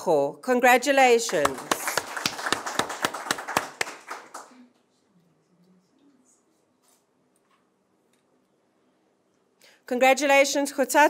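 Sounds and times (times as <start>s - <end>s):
small group applauding: 1.2s - 5.0s.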